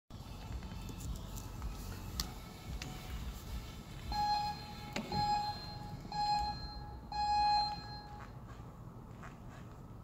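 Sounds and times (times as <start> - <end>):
electronic timer beeps: 4.1 - 8.3.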